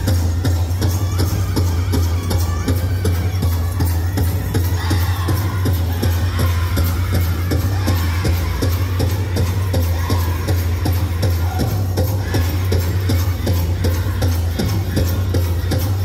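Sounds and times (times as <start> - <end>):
big drum beating: 0.0 - 16.0
group of voices singing: 3.8 - 16.0.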